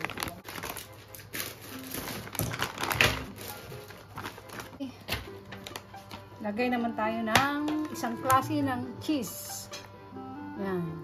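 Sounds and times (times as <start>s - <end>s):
plastic packaging crinkling: 0.0s - 6.4s
faint music: 0.0s - 11.0s.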